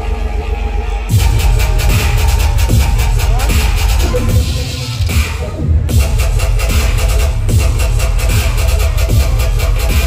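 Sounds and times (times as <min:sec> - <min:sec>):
loud dubstep with heavy bass: 0:00.0 - 0:10.0.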